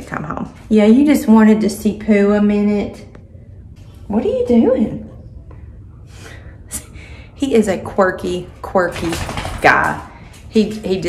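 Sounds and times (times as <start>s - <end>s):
soft breath: 5.5s - 7.4s.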